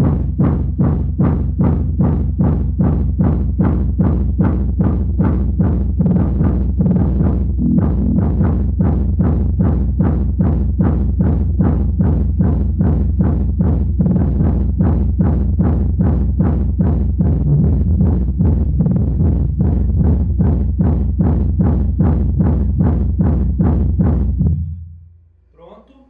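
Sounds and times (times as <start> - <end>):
loud bass-heavy music: 0.0 - 25.8.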